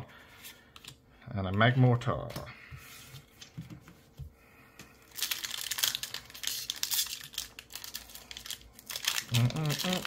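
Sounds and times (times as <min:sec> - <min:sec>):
foil wrapper crinkling and tearing: 0:05.1 - 0:10.0.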